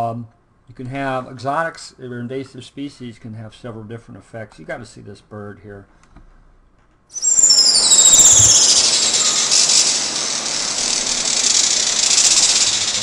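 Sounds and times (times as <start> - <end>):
hummingbird high twittering calls: 7.2 - 13.0.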